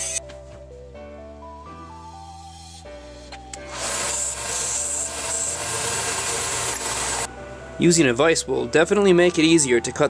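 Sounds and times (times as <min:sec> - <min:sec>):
background music: 0:00.0 - 0:10.0
belt sander grinding metal: 0:03.6 - 0:07.3.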